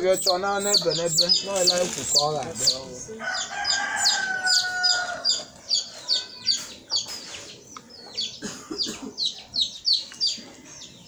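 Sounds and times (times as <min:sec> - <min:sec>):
chickens clucking: 0:00.0 - 0:11.0
chicks peeping: 0:00.0 - 0:11.0.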